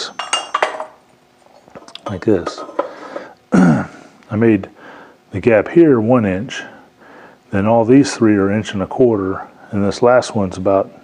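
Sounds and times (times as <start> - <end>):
metal tool clinking on steel rack: 0.0 - 1.0, 1.8 - 3.0.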